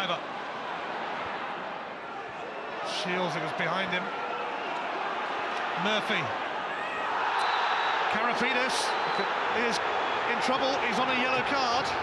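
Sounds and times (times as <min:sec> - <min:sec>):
stadium crowd roar: 0:00.0 - 0:12.0
tv commentary: 0:08.1 - 0:12.0.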